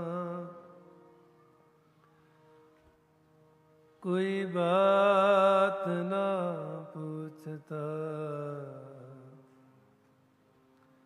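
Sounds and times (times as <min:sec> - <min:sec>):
harmonium drone: 0:00.0 - 0:11.0.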